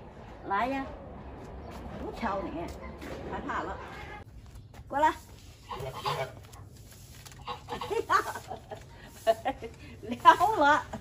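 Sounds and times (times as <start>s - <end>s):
woman laughing: 7.7s - 11.0s.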